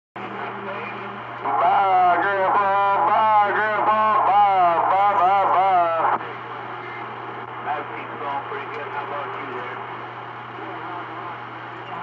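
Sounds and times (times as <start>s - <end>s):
thin voice over radio: 0.2s - 10.0s
radio static with hum: 0.2s - 12.0s.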